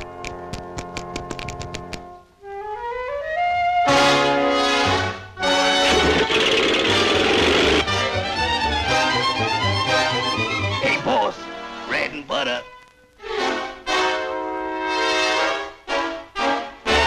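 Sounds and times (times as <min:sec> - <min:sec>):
orchestral cartoon music with brass: 0:02.0 - 0:17.0.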